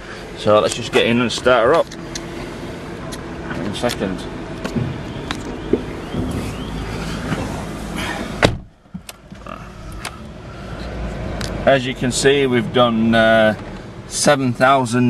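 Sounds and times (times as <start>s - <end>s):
car door shutting with thump: 4.7s - 5.1s, 5.7s - 9.4s.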